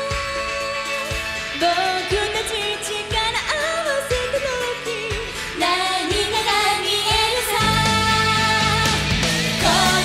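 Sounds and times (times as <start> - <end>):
band backing: 0.0 - 10.0
woman singing pop song: 0.0 - 10.0.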